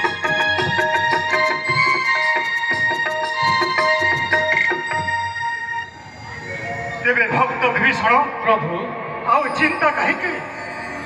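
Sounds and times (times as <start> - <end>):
stage music over loudspeakers: 0.0 - 11.0.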